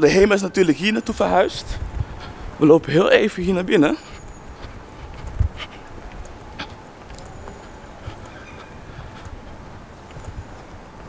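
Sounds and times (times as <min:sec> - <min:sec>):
outdoor background noise: 0:00.0 - 0:11.0
footsteps on paving: 0:03.8 - 0:11.0.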